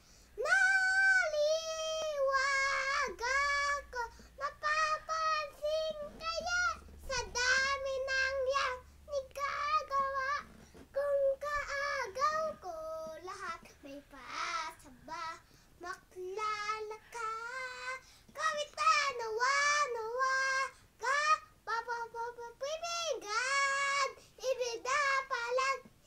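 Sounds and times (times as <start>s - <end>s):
boy singing: 0.4s - 26.0s.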